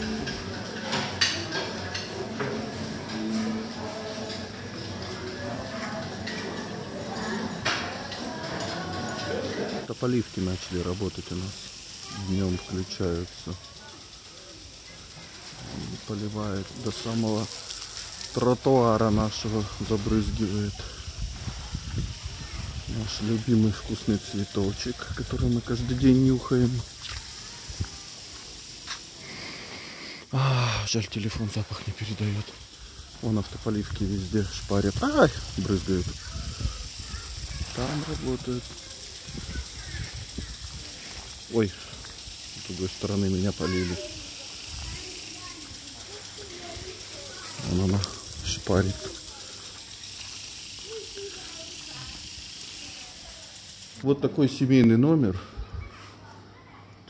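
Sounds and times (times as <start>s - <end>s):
sprinklers hissing: 0.0s - 57.0s
person sniffing: 29.2s - 30.8s.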